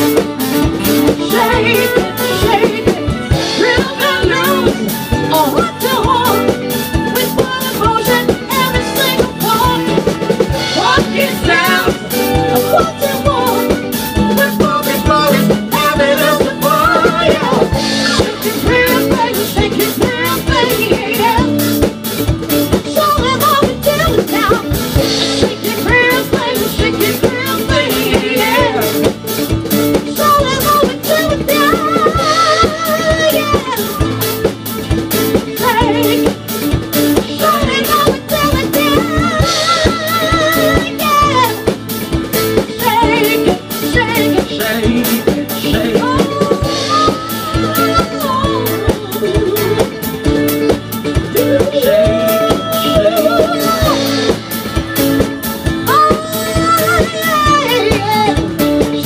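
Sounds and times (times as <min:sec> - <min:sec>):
drum kit beat: 0:00.0 - 0:59.0.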